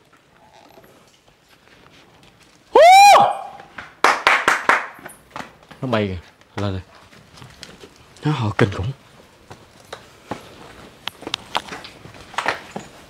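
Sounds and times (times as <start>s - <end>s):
shrill yelp: 2.7s - 3.7s.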